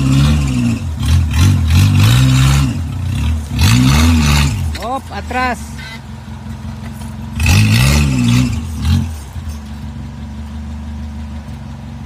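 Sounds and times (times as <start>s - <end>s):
car engine running and revving: 0.0s - 12.0s.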